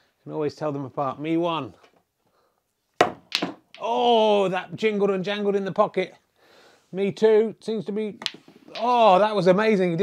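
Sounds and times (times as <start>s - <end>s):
balls clacking: 3.0s - 4.0s, 8.2s - 9.4s
man speaking: 3.8s - 6.2s, 7.0s - 10.0s
cue striking ball: 8.2s - 9.0s
ball rattling in pocket: 8.2s - 9.1s.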